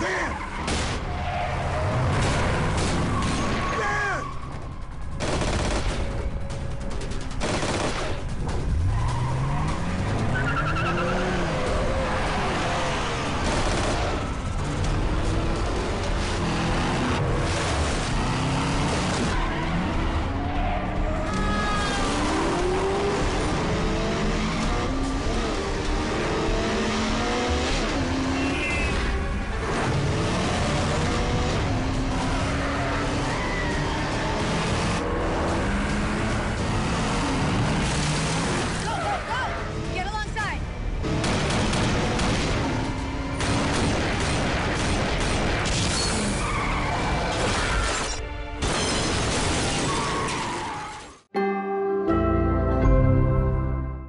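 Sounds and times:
car engines revving: 0.0s - 5.2s, 8.3s - 48.6s
dramatic music score: 51.4s - 54.0s.

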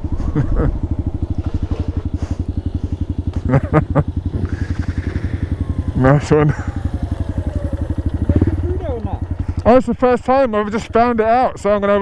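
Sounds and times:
second motorcycle idling: 0.0s - 11.8s
motorcycle engine idling: 0.0s - 12.0s.

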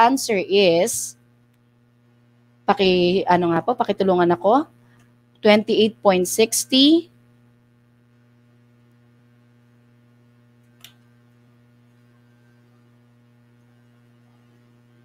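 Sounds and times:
electrical mains hum: 0.0s - 15.0s
faint click: 10.6s - 11.1s.

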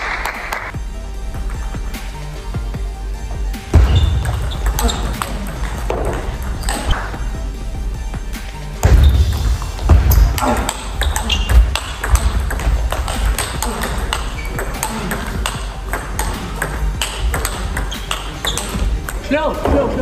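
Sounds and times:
table tennis ball bouncing on table: 3.8s - 7.1s, 8.8s - 19.8s
table tennis ball clicking off bats: 10.1s - 19.2s.

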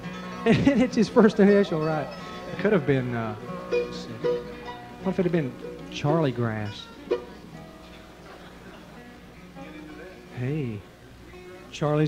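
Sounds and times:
plucked string instrument: 0.0s - 11.7s.

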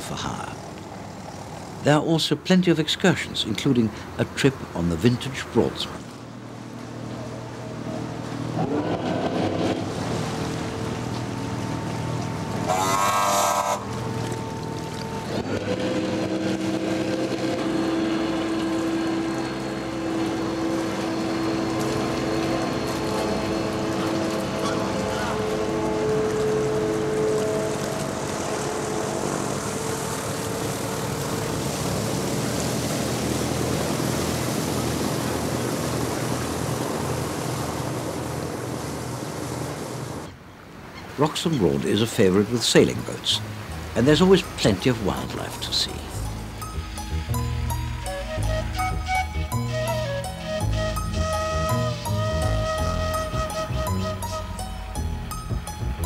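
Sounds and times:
boat engine running: 0.0s - 56.0s.

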